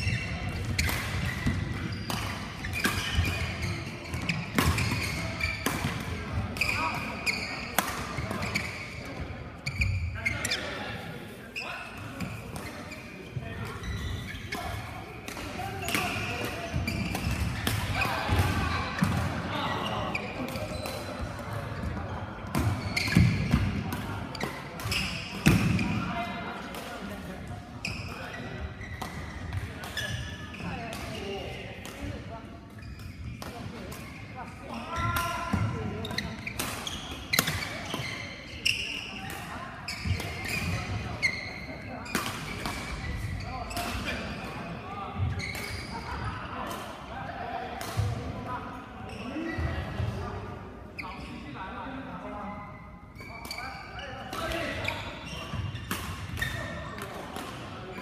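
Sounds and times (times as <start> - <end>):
voices chattering: 0.0 - 58.0
racket hitting shuttlecock: 0.5 - 6.8, 36.1 - 38.1, 55.8 - 57.6.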